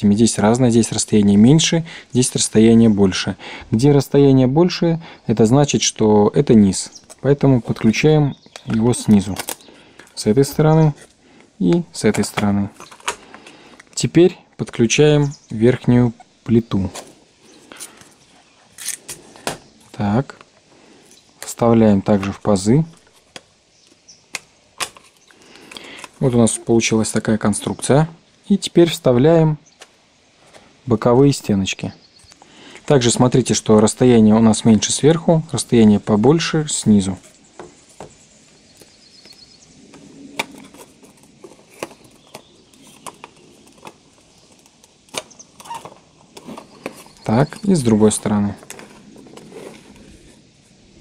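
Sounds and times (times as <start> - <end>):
plastic panels clicking: 41.7 - 47.1.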